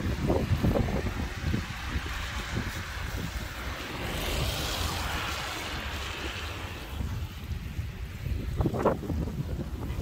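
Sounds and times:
tyres hissing on wet road: 0.0 - 10.0
wind buffeting microphone: 0.0 - 10.0.

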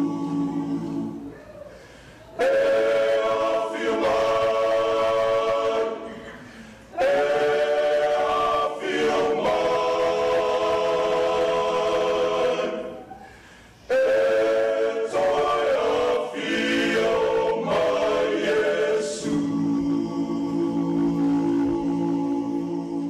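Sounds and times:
choir singing held chords: 0.0 - 23.0.

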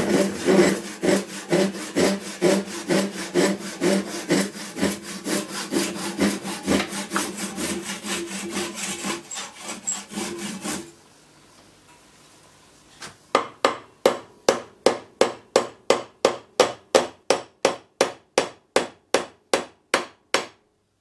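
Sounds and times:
hand saw cutting wood: 0.0 - 11.0.

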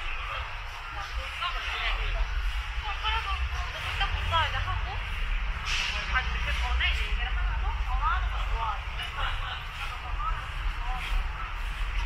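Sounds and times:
passersby talking: 0.0 - 12.0
traffic rumble: 0.0 - 12.0.

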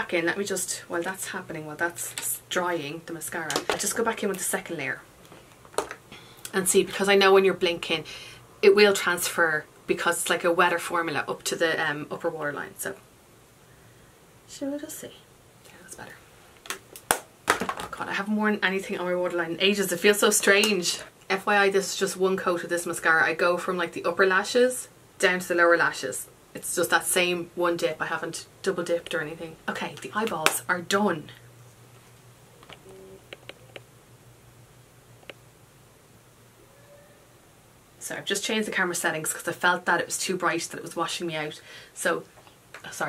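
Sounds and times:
breath: 6.1 - 6.5, 41.6 - 42.0
person speaking: 17.9 - 31.5.

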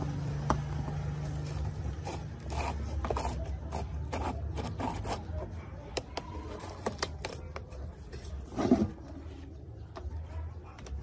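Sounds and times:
fingers scraping dirt on casing: 1.3 - 9.1.

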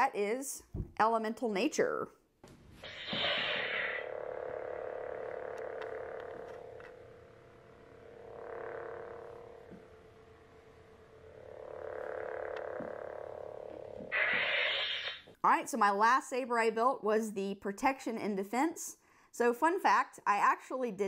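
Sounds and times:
toy lightsaber electronic hum: 2.8 - 15.3.

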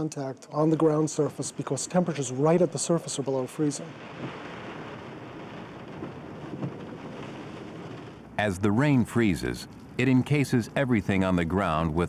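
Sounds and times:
freezing rain hissing on car: 1.5 - 9.6.

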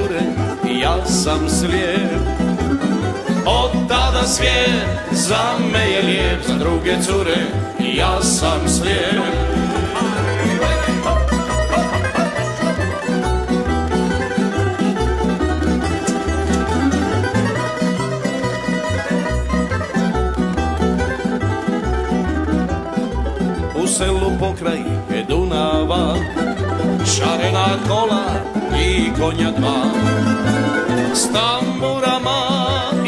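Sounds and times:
double bass line: 0.0 - 33.0
plucked string band playing: 0.0 - 33.0.

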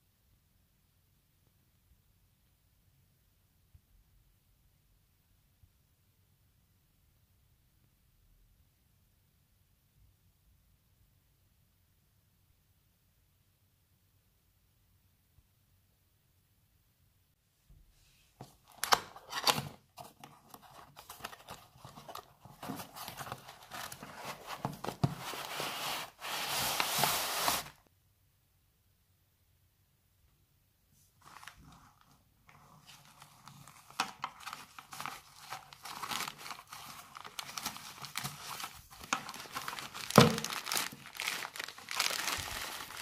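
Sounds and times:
clicks and rustling of packaging: 18.4 - 25.6, 31.3 - 43.0.

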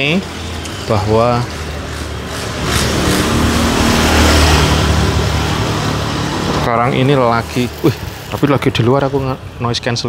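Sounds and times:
vehicle engine running: 0.0 - 8.7
road noise: 0.0 - 10.0.

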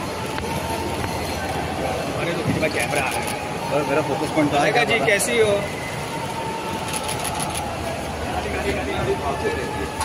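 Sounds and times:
airport terminal background noise: 0.0 - 10.0.

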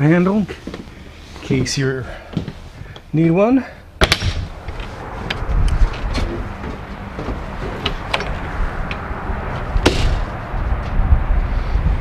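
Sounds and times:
wind buffeting microphone: 4.0 - 12.0.

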